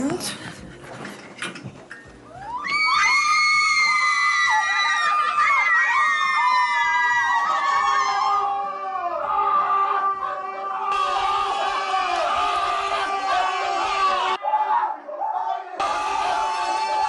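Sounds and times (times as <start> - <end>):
women screaming: 2.4 - 17.0.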